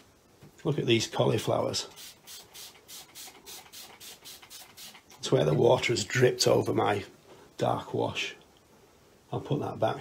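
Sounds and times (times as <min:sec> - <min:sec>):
spray bottle hissing: 0:01.9 - 0:05.2.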